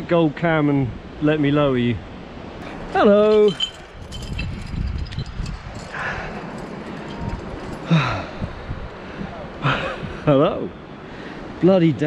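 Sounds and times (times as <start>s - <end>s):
wind buffeting microphone: 1.8s - 10.3s
breathy voice sounds: 7.8s - 8.6s.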